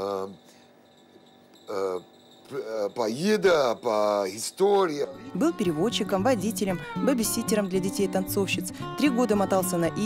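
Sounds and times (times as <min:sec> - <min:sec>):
faint high-pitched tone: 0:00.0 - 0:06.2.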